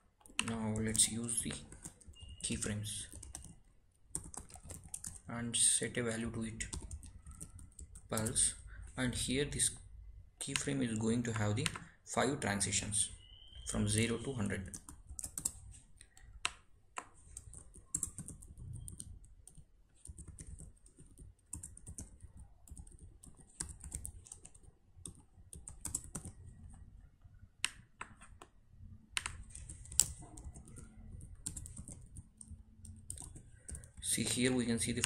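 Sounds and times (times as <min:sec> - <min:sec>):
typing on computer keyboard: 0:00.2 - 0:05.3, 0:06.6 - 0:08.6, 0:14.6 - 0:26.6, 0:29.1 - 0:35.0.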